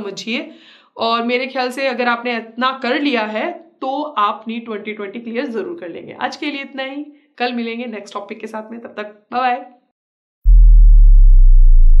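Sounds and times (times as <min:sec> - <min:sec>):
deep synthesized tone: 0:10.4 - 0:12.0.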